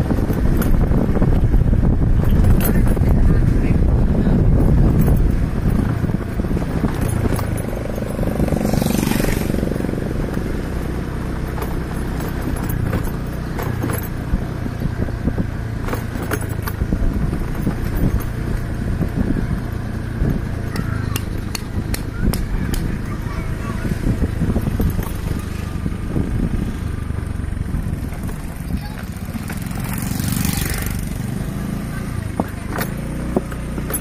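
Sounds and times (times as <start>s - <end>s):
sharp clicks and rattles: 0.0s - 25.9s, 27.2s - 31.3s, 32.2s - 34.0s
motorcycle running at low speed: 0.0s - 34.0s
wind rumble on microphone: 0.0s - 34.0s.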